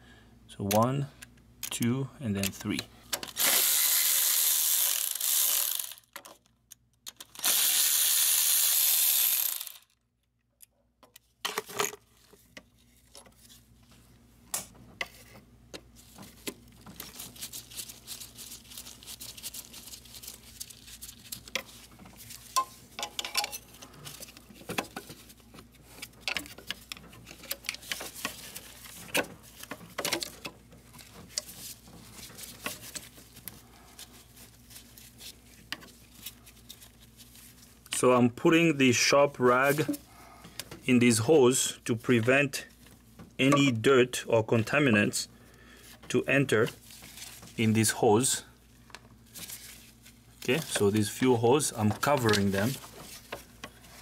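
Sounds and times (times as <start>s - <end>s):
power tool undoing bolts: 3.2s - 6.2s, 7.2s - 9.8s.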